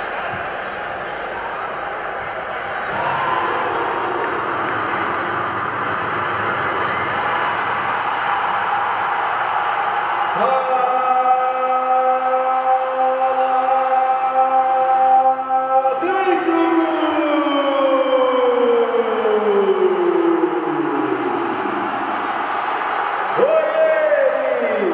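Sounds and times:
man shouting goal cry: 0:23.3 - 0:24.9
man shouting: 0:23.4 - 0:24.9.

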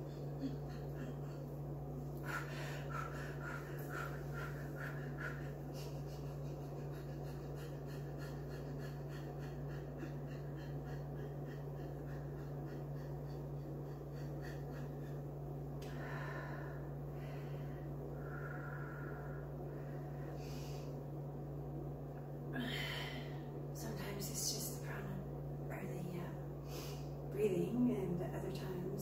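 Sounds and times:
woman breathing quickly: 0:00.0 - 0:21.2, 0:22.6 - 0:23.7, 0:26.6 - 0:27.3
steady low hum: 0:00.0 - 0:29.0.

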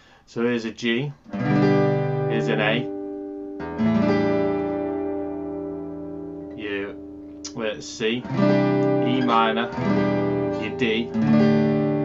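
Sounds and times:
acoustic guitar chord ringing: 0:01.3 - 0:12.0.

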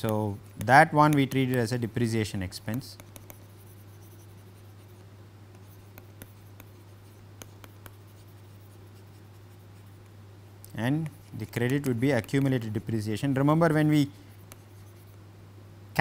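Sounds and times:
stylus tapping and scratching on screen: 0:00.0 - 0:15.2
steady low hum: 0:00.0 - 0:16.0.

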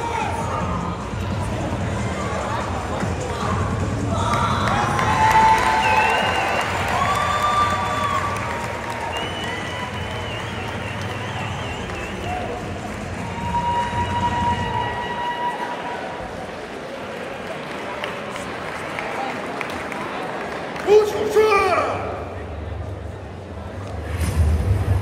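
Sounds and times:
crowd hubbub in large hall: 0:00.0 - 0:25.0.

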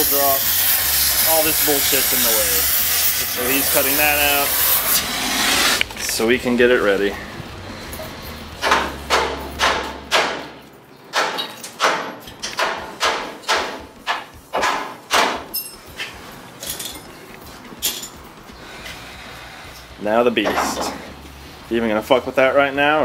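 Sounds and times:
hammer striking steel: 0:07.9 - 0:16.1.

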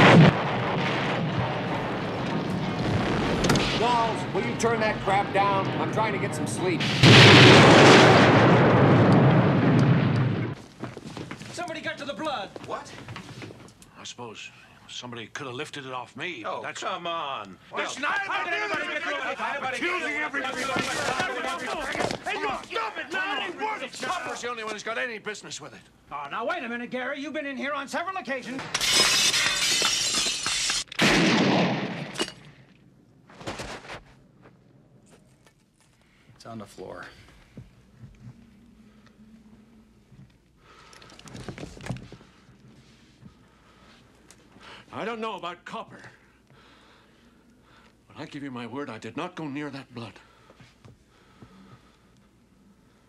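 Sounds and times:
loud fireball explosion: 0:00.0 - 0:10.6, 0:31.0 - 0:32.2
window glass smashing: 0:28.6 - 0:30.9.

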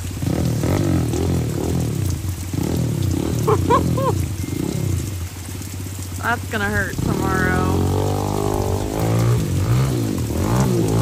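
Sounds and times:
dirt bike engine revving: 0:00.0 - 0:05.3, 0:06.2 - 0:11.0
steady rain: 0:00.0 - 0:11.0
person laughing: 0:03.2 - 0:04.4.

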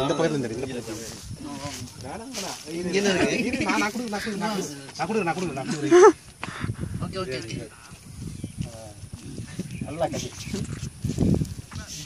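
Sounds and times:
men talking over one another: 0:00.0 - 0:12.0.

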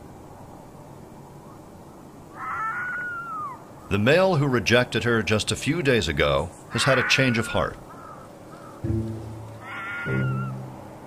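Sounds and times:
fox wailing call: 0:02.4 - 0:03.6, 0:06.7 - 0:07.4, 0:09.6 - 0:10.8.

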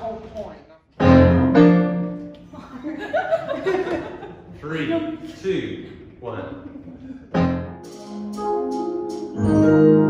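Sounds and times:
piano chords ringing: 0:01.0 - 0:02.3, 0:07.3 - 0:10.0.

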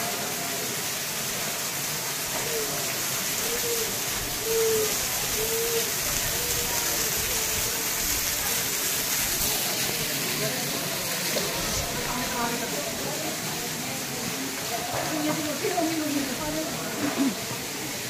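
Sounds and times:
faint voices: 0:00.0 - 0:18.0
heavy rain on metal canopy: 0:00.0 - 0:18.0
water running off rock: 0:00.0 - 0:18.0.

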